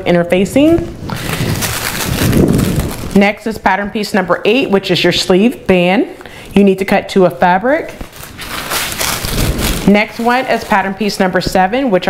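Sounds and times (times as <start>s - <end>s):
tissue paper rustling and crinkling: 1.1s - 3.2s, 7.9s - 11.7s.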